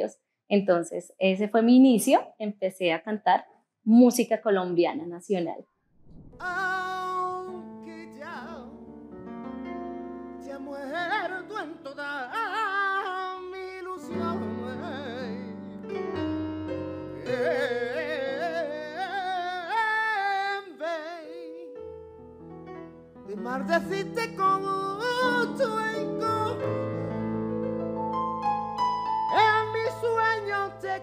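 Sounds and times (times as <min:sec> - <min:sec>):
person singing with vibrato: 0:06.4 - 0:08.9, 0:10.4 - 0:15.9, 0:17.0 - 0:21.8, 0:23.3 - 0:27.2, 0:29.3 - 0:31.0
sustained keyboard chord: 0:13.8 - 0:18.9.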